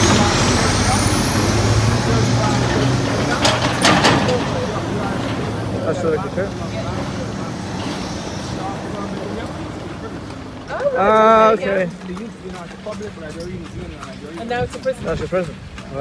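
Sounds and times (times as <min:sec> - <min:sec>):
street traffic: 0:00.0 - 0:16.0
truck engine running: 0:00.0 - 0:16.0.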